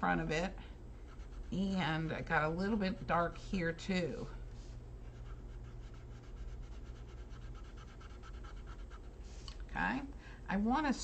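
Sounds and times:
colored pencil shading on paper: 1.0s - 1.9s, 5.1s - 9.1s.

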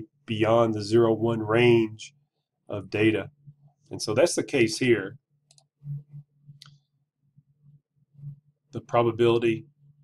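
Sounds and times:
steady low hum: 0.0s - 10.0s
computer mouse clicks: 5.4s - 6.8s.

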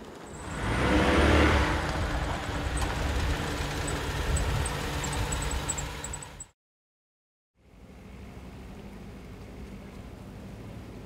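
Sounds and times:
car engine revving: 0.3s - 6.4s.

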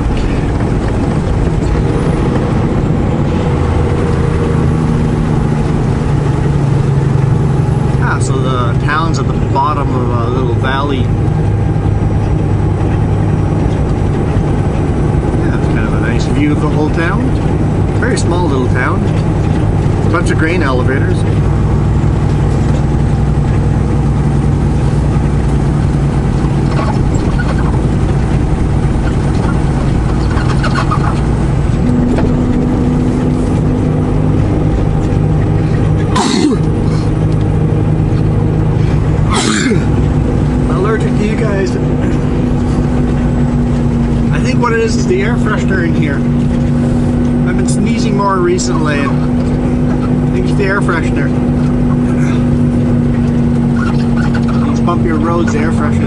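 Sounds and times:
road noise: 0.0s - 56.0s
truck diesel engine drone: 0.0s - 56.0s.

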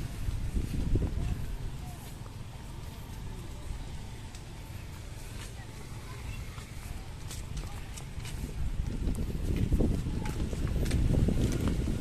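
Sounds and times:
footsteps on stone paving: 0.0s - 12.0s
steady low rumble: 0.0s - 12.0s.

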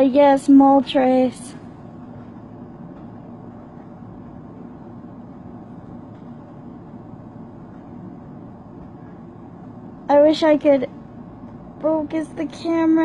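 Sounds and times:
low room hum and rumble: 0.0s - 13.0s.

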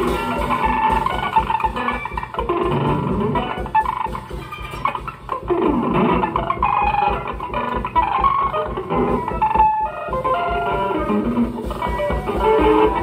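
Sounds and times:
drum kit playing: 0.0s - 13.0s
electric guitar notes through amplifier: 0.0s - 13.0s.

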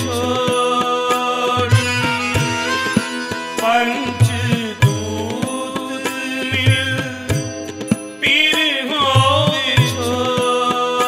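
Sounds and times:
harmonium sustained notes: 0.0s - 9.4s
person singing: 0.0s - 11.0s
tabla strokes: 0.0s - 11.0s.

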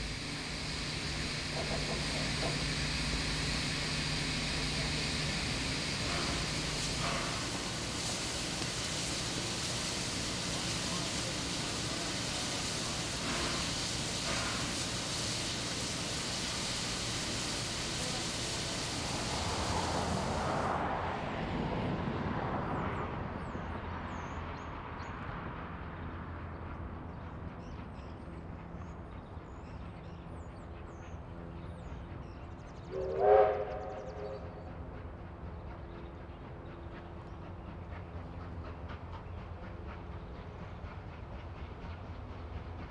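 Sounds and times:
steam hissing from locomotive: 0.0s - 21.0s, 32.8s - 42.9s
train whistle blast: 32.9s - 34.5s.

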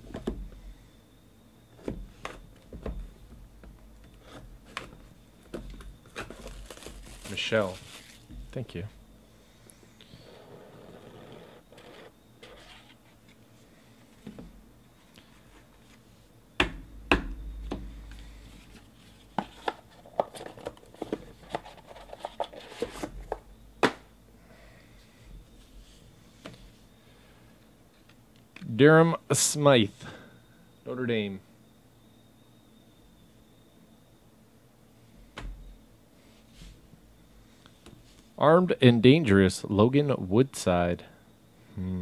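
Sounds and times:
plastic wrapping crinkling: 6.0s - 8.4s.

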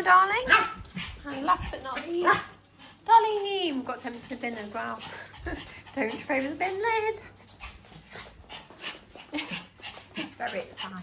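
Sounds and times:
dog panting: 0.8s - 3.1s, 3.9s - 11.0s.

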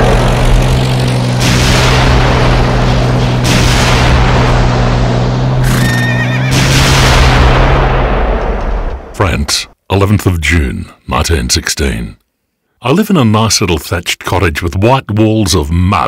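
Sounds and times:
low hum: 0.0s - 9.5s
shellfire blasts: 1.3s - 5.9s, 6.5s - 9.2s
horse whinnying: 5.6s - 6.6s.

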